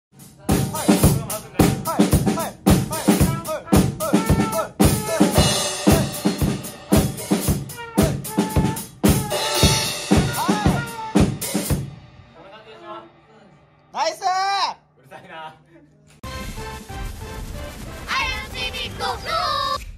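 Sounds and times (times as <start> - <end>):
drum kit fills: 0.1 - 14.3, 16.2 - 19.9
cymbal crashes: 4.8 - 14.0.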